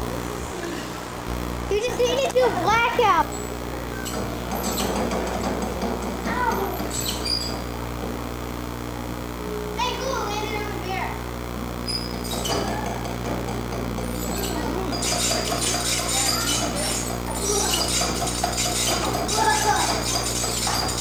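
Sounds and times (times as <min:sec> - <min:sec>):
chatter of voices: 0:00.0 - 0:03.9, 0:06.1 - 0:07.2, 0:09.5 - 0:21.0
steady low hum: 0:00.0 - 0:21.0.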